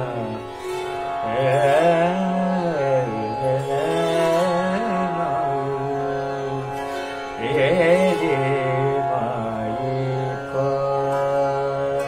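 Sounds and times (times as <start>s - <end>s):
man singing classical vocals: 0.0s - 0.6s, 1.2s - 12.0s.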